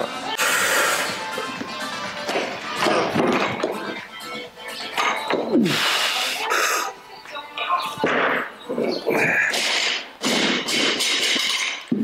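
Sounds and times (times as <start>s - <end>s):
barbell crashing onto platform: 9.5s - 11.8s
barbell bouncing and rattling: 9.5s - 12.0s.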